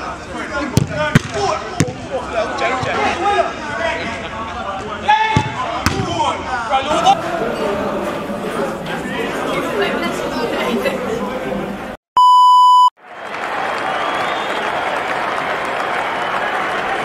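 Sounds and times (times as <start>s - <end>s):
crowd chatter: 0.0s - 12.0s
electronic beep: 12.2s - 12.9s
applause: 13.0s - 17.0s.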